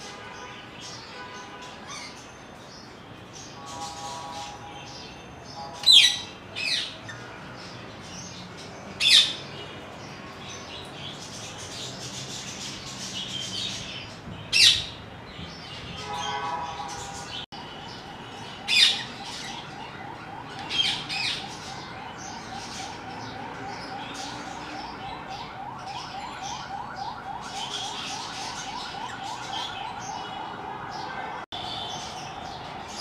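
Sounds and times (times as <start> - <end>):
birds chirping: 0.2 - 33.0.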